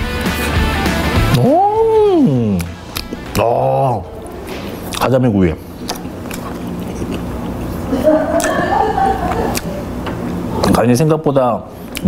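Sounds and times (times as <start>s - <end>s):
man eating: 1.1s - 10.8s
man humming with enjoyment: 1.2s - 2.8s.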